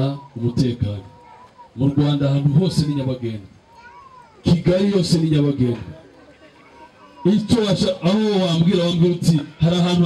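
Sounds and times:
man speaking drawn-out syllables: 7.2 - 10.0.

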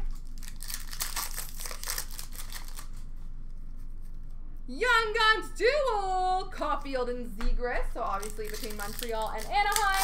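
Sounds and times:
card pack wrapper crinkling: 0.0 - 4.3, 8.0 - 10.0.

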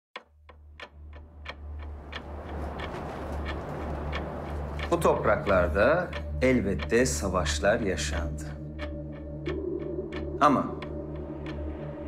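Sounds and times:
steady ticking: 0.2 - 12.0.

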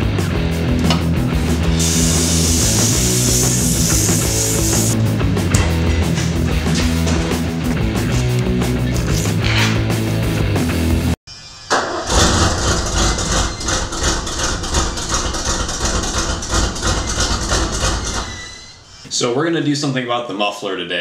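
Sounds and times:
truck engine starting and running: 0.0 - 7.3, 11.7 - 18.7
rock music: 0.0 - 11.2
loud exhaust: 1.4 - 5.0.

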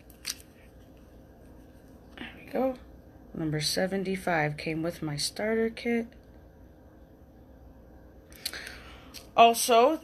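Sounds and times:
necklace and tag rustle: 0.0 - 2.0.

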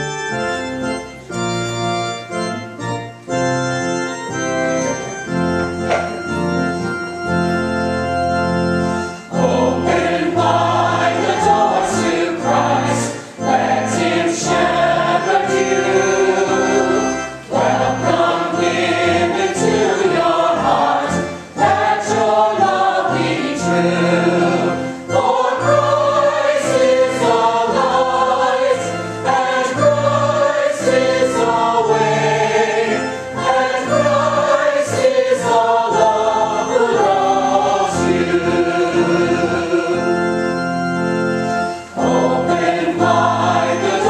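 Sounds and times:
held low accompanying notes: 0.0 - 44.0
choir singing a hymn: 8.4 - 44.0.

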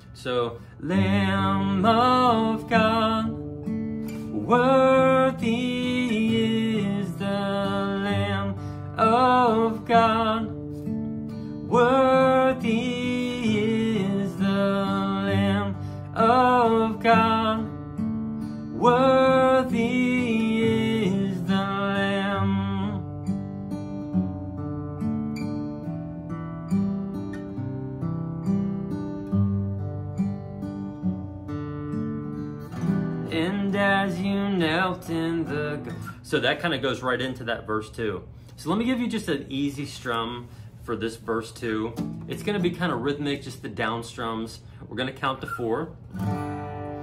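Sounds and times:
acoustic guitar chords: 0.0 - 47.0
man singing: 0.2 - 3.5, 4.2 - 10.6, 11.6 - 17.8, 18.7 - 23.1, 33.2 - 37.8.

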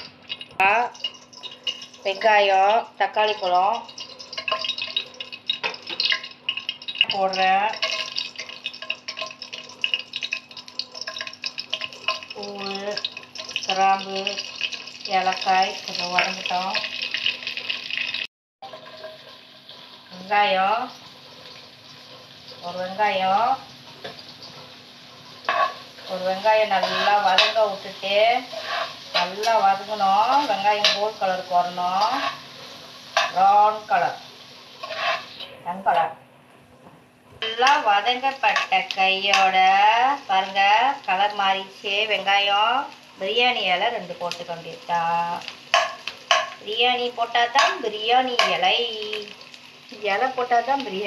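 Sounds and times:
oil sizzling and popping: 0.0 - 51.0
spatula scraping a pan: 3.9 - 6.6, 7.7 - 12.4, 16.8 - 22.8, 23.8 - 33.4, 34.6 - 35.5.

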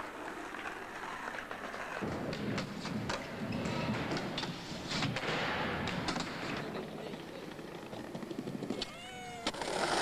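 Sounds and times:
skateboard clack: 0.0 - 10.0
skateboard wheels rolling: 0.0 - 10.0.

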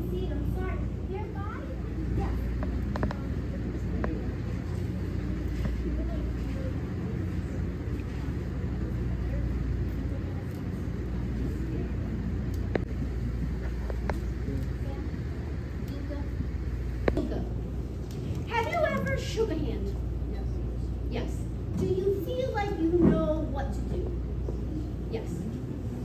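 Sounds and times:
murmur of voices: 0.0 - 26.0
ventilation hum: 0.0 - 26.0.

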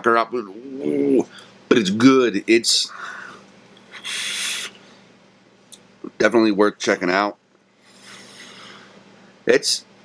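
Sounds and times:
person exhaling vapour: 2.9 - 4.9.

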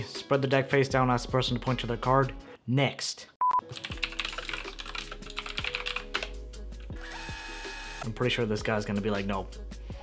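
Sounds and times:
soft background music: 0.0 - 2.6, 3.5 - 10.0
keyboard typing: 3.7 - 6.4.

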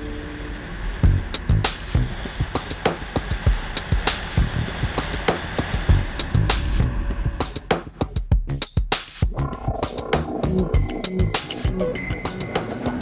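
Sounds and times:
drum beat with kicks and snare: 1.0 - 13.0.

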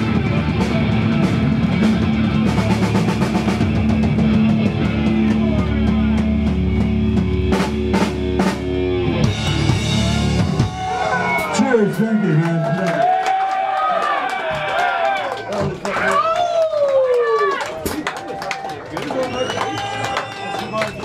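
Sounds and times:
punk rock band playing: 0.0 - 13.1.

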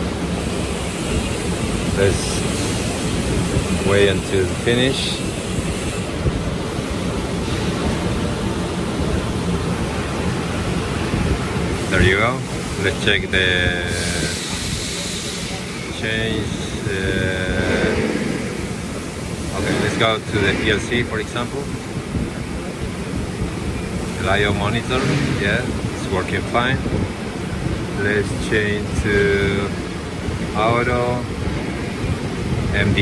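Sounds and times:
machinery rushing noise: 0.0 - 33.0.

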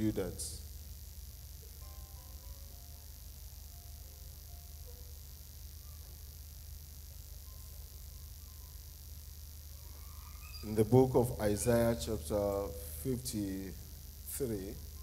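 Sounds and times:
low electrical hum: 0.0 - 15.0.

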